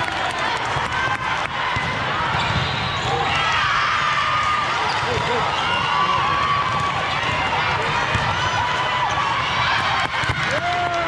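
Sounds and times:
volleyballs struck and bouncing: 0.5s - 3.3s, 6.1s - 10.8s.

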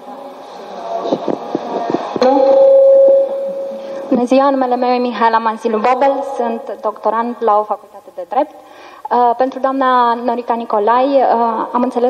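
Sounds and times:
loud steady pitched tone: 1.6s - 8.2s.

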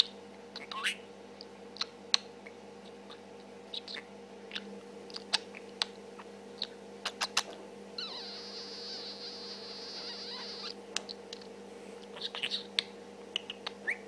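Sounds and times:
budgerigar clicks and chirps: 12.1s - 14.0s.

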